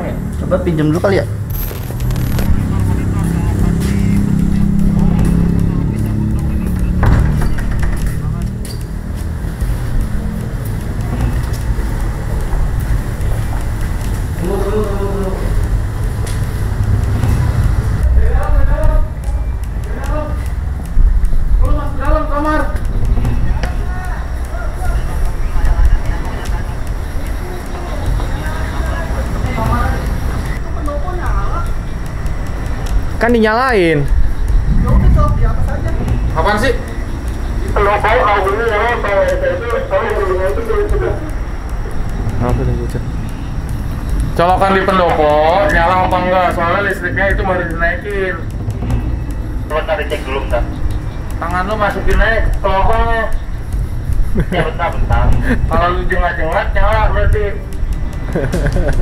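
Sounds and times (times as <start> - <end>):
muffled voices: 0.0 - 59.0
steady low rumble: 0.0 - 59.0.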